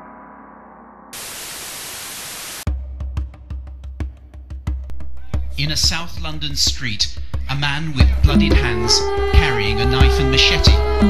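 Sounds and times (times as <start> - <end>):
static hiss: 1.2 - 2.7
music with heavy bass beats: 4.9 - 11.0.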